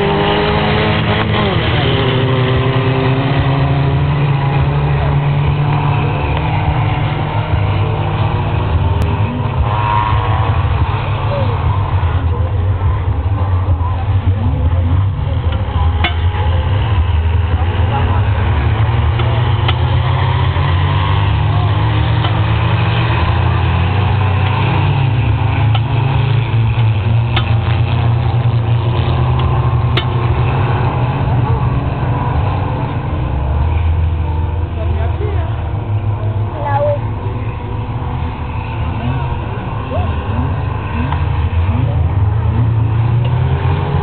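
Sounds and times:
distant race car engines: 0.0s - 44.0s
continuous deep rumble: 1.0s - 43.3s.

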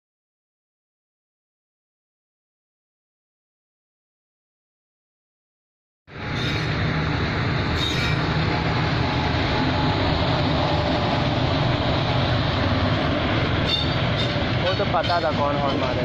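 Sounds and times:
train wheels rumbling on rail: 6.1s - 16.0s
voices: 14.5s - 16.0s.

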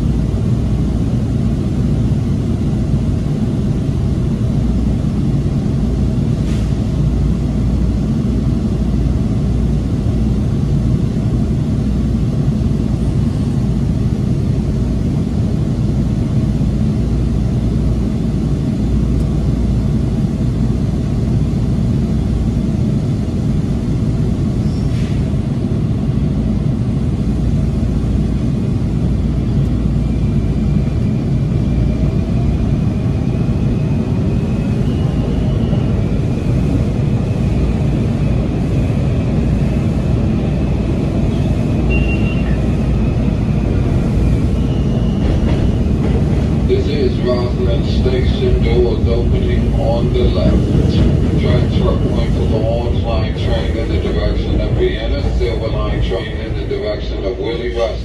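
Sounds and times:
train car rumbling on rails: 0.0s - 58.0s.

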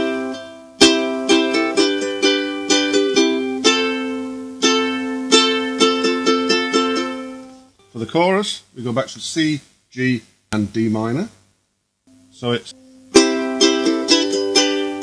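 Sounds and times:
ukulele strumming: 0.0s - 7.7s, 12.8s - 15.0s.

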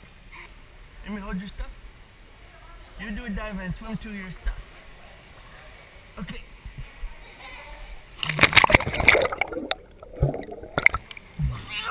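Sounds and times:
water sloshing and gurgling: 8.1s - 11.5s
splash into pool: 8.2s - 11.1s.

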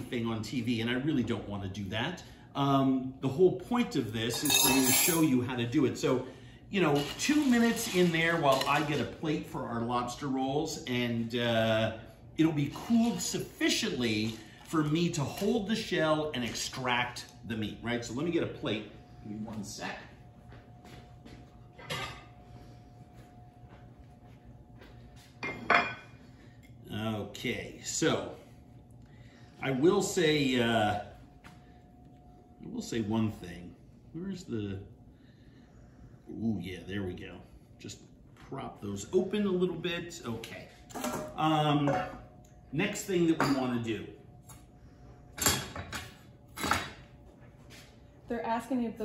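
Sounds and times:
plate clink: 4.4s - 5.2s, 25.4s - 26.1s.

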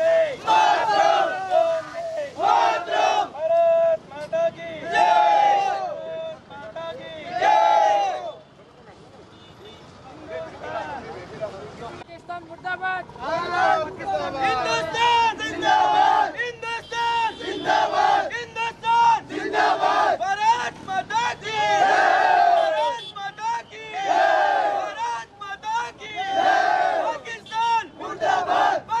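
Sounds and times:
crowd of men chanting: 0.0s - 3.4s, 4.8s - 6.0s, 7.2s - 8.4s, 14.6s - 16.4s, 17.3s - 18.4s, 19.1s - 20.3s, 21.2s - 22.9s, 23.7s - 25.0s, 25.9s - 29.0s.

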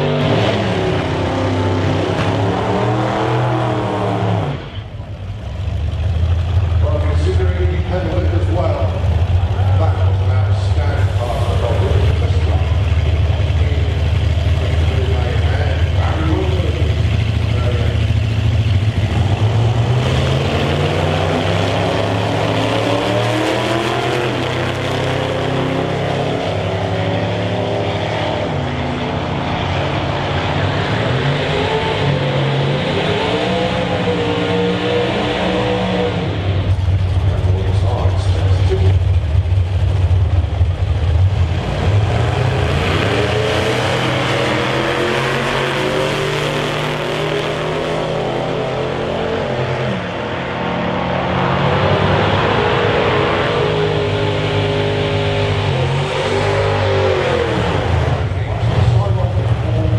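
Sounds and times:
race car engines revving loudly: 0.0s - 59.9s.

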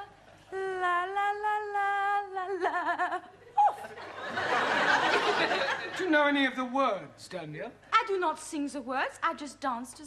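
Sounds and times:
woman singing wordless tune: 0.0s - 3.9s.

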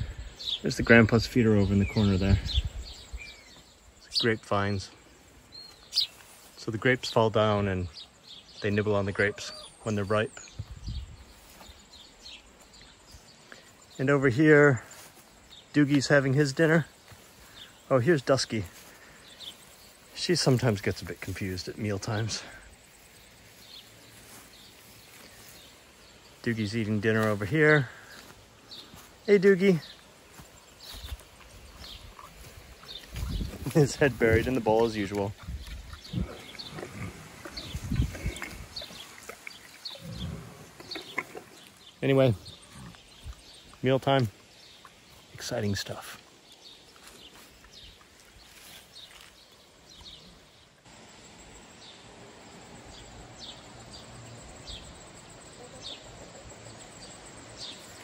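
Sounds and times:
faint bird chirps: 0.0s - 16.1s
pig grunting: 35.8s - 39.1s, 39.9s - 41.6s.

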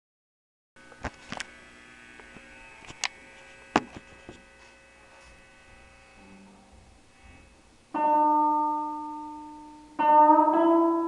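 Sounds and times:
faint electrical hum: 0.8s - 11.0s.

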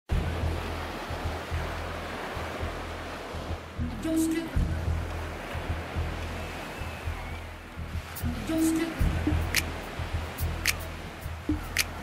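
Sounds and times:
background music with bass beat: 0.1s - 6.4s, 7.0s - 12.0s
surf washing onto sandy shore: 0.1s - 12.0s.

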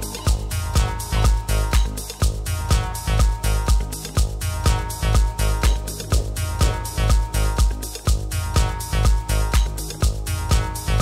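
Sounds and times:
electronic dance music: 0.0s - 11.0s
steady kick drum: 0.0s - 11.0s.

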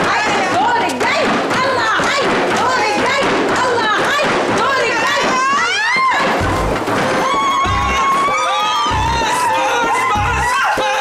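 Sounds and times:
hand-beaten frame drums: 0.0s - 11.0s
women chanting and shouting: 0.0s - 11.0s.

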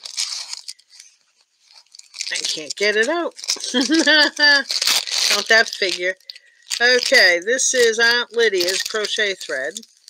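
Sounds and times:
paper rustling: 0.0s - 10.0s.

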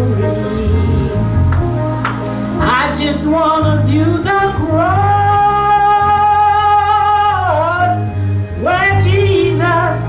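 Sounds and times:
woman singing into a microphone: 2.6s - 10.0s.

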